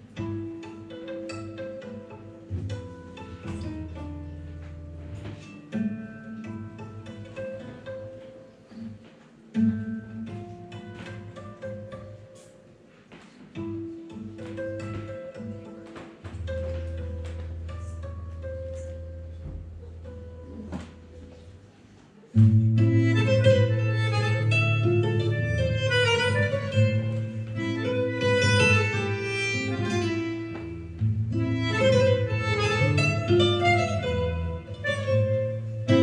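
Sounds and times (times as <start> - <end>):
plucked acoustic guitar: 0.0 - 21.7, 22.3 - 36.0
long held low notes and chords: 22.3 - 36.0.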